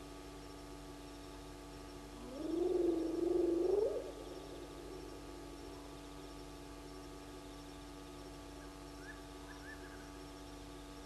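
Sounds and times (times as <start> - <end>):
low rasping animal call: 2.2 - 5.6.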